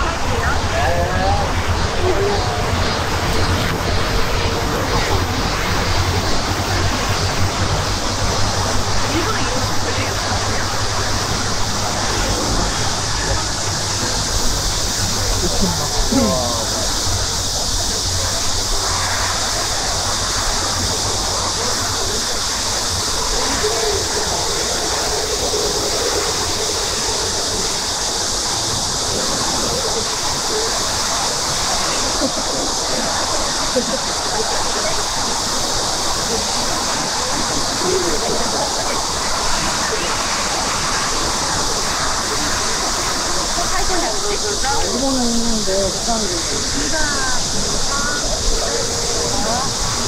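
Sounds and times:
faint murmured speech: 0:00.0 - 0:50.0
steady outdoor hiss: 0:00.0 - 0:50.0.

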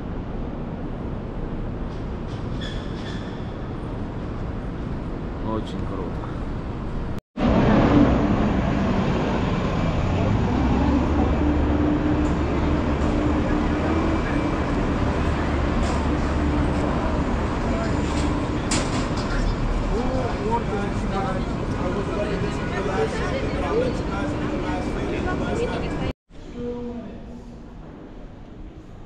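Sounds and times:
city street traffic: 0:00.0 - 0:26.1
bus engine idling: 0:07.5 - 0:26.1.

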